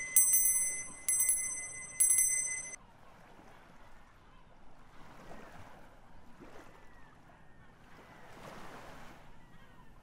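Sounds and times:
hand bell ringing: 0.0 - 2.8
faint surf: 0.0 - 10.0.

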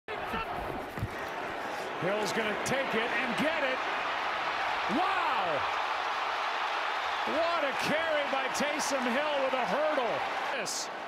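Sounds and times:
stadium crowd noise: 0.1 - 11.0.

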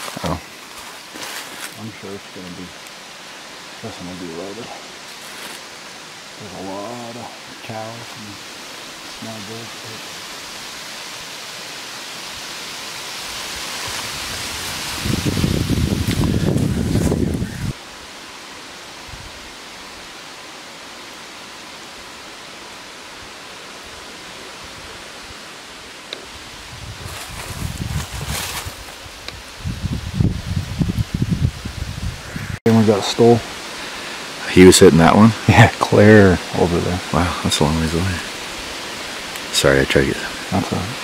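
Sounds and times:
outdoor background hiss: 0.0 - 41.0.

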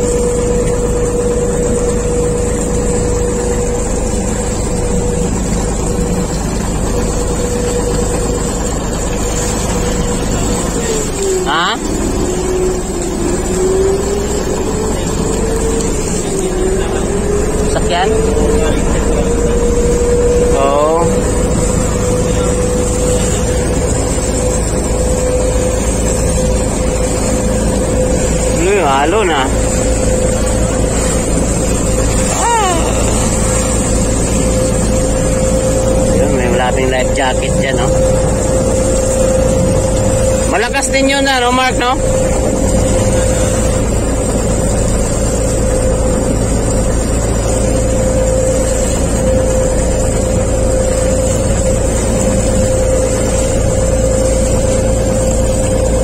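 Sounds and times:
boat engine droning: 0.0 - 56.0
rushing water: 0.0 - 56.0.

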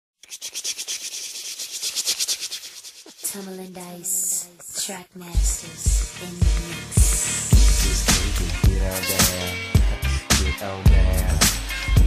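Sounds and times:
shaker percussion rhythm: 0.2 - 10.5.

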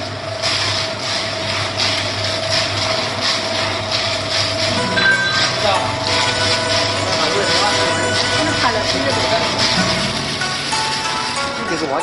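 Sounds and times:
steady motor hum: 0.0 - 12.0.

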